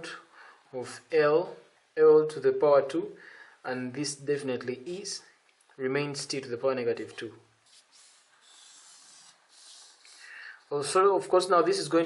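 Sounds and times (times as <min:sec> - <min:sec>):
marker scratching on paper: 0:07.6 - 0:10.8.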